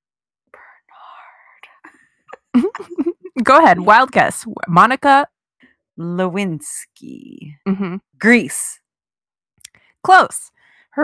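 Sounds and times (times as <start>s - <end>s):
faint whispering: 0.6s - 2.0s.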